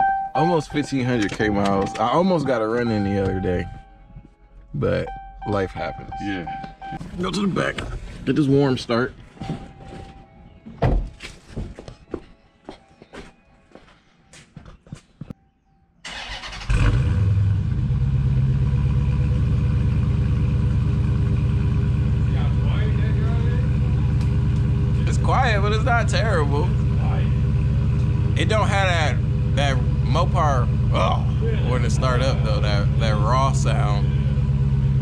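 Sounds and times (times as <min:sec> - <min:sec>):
car engine starting and idling: 0:00.0 - 0:04.1, 0:04.8 - 0:10.1, 0:16.0 - 0:35.0.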